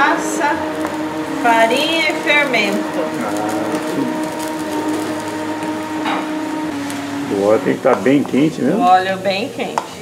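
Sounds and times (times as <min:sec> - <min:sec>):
low hum: 0:00.0 - 0:08.3.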